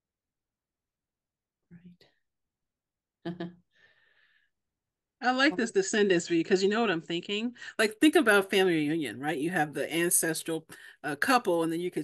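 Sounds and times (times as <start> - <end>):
person murmuring: 3.2 - 3.6.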